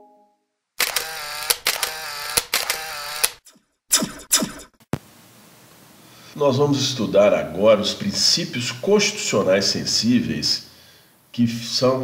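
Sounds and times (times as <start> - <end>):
sharp clicks: 0.8 - 4.6.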